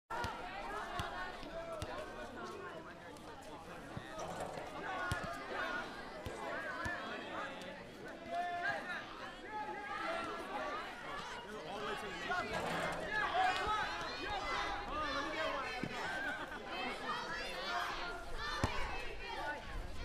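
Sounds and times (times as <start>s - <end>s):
people talking: 0.1s - 20.0s.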